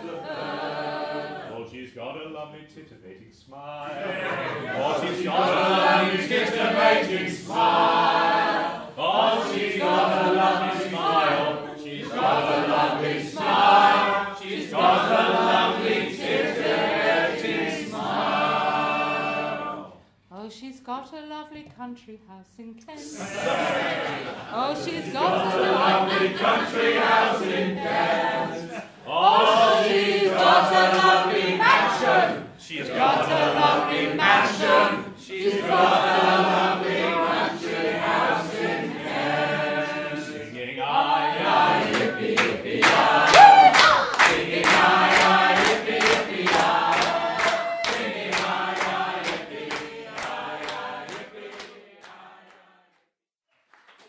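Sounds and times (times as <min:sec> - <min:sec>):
group singing a chorus: 0:00.0 - 0:01.6, 0:03.6 - 0:20.0, 0:23.0 - 0:53.0.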